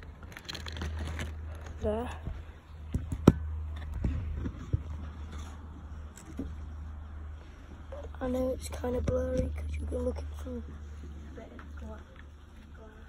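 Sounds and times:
low handling rumble: 0.0s - 13.0s.

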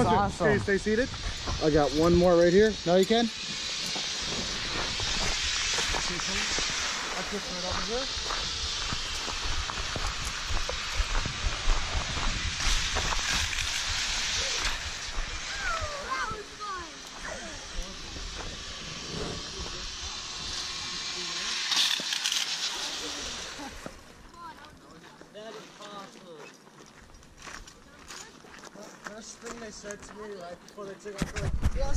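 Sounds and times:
wind buffeting microphone: 4.2s - 16.6s.

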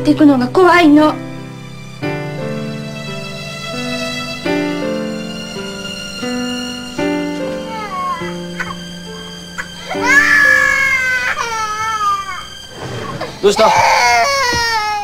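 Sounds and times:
soft sad piano music: 0.0s - 15.0s
infant crying: 7.6s - 8.8s, 9.6s - 12.6s, 13.4s - 15.0s.

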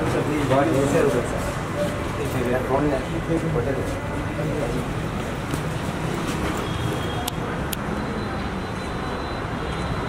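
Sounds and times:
street noise rumble: 0.0s - 10.0s.

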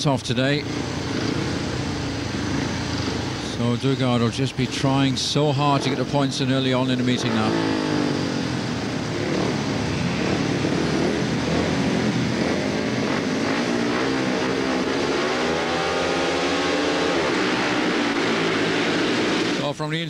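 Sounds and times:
motorcycle engines revving: 0.0s - 19.7s.

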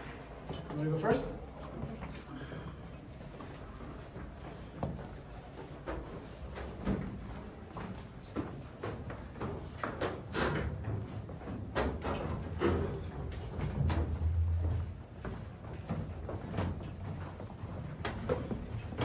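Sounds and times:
footsteps on metal staircase: 0.0s - 19.0s.

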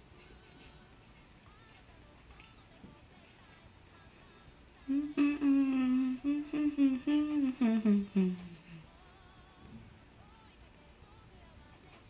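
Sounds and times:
woman humming: 4.8s - 9.5s.

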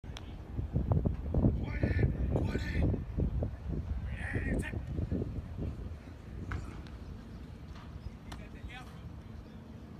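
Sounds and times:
wind on microphone: 0.1s - 8.8s.

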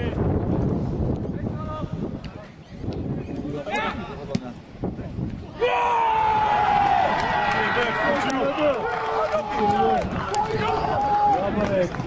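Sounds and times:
men shouting and cheering: 5.5s - 12.0s.

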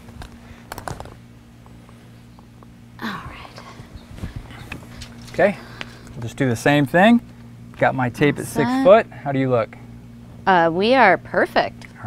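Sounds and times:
steady low hum: 0.0s - 12.0s.

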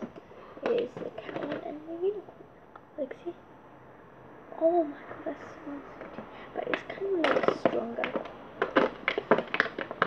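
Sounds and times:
handling stationery packaging: 0.0s - 2.2s, 6.0s - 10.0s.

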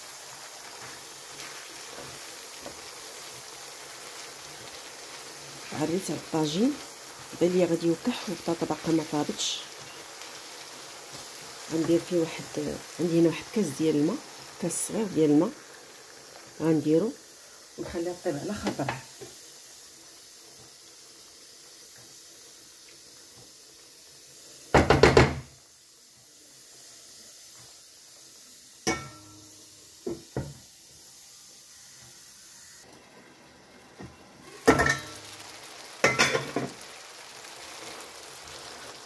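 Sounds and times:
stew simmering: 0.0s - 32.2s, 32.8s - 39.0s.

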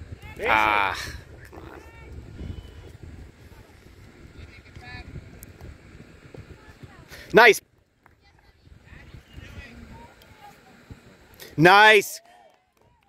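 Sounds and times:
wind rumbling on microphone: 0.0s - 11.3s.

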